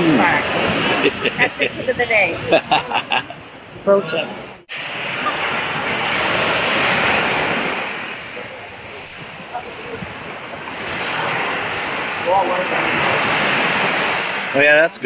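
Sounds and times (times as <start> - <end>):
surf washing onto beach: 0.0 - 3.4, 4.3 - 15.0
wind on microphone: 0.0 - 14.6.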